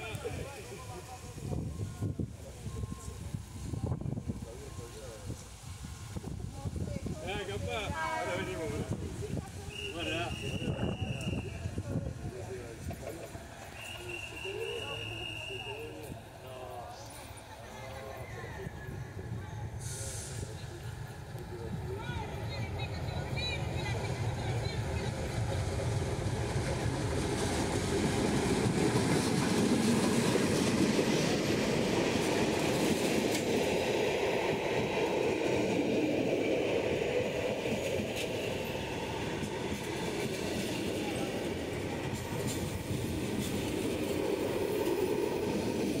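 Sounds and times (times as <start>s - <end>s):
diesel locomotive passing: 0.0s - 46.0s
train wheels clattering on rails: 24.0s - 46.0s.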